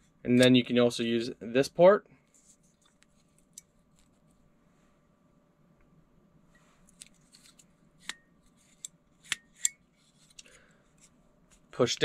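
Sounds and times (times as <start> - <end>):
faint handling rustle: 2.2 - 5.1.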